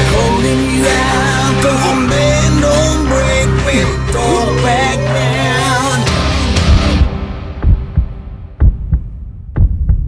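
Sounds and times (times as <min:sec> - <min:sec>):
music: 0:00.0 - 0:10.0
heartbeat thumps: 0:06.6 - 0:10.0.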